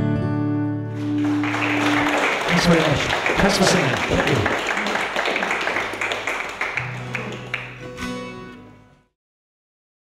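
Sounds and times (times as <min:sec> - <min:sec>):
audience clapping: 0:00.9 - 0:08.2.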